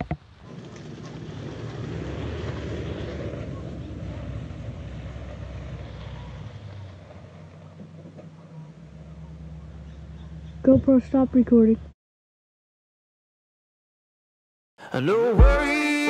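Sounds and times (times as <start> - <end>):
pickup truck driving past: 0.3 - 10.6.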